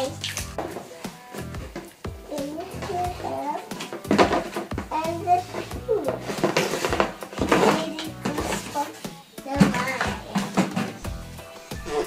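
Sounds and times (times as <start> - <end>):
background music: 0.0 - 12.0
person speaking: 2.3 - 6.8, 7.4 - 12.0.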